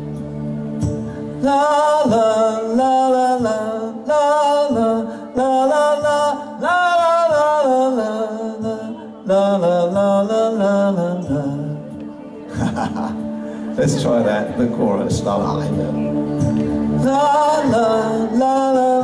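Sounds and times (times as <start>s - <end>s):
man singing wordless melody: 1.3s - 16.1s, 16.9s - 19.0s.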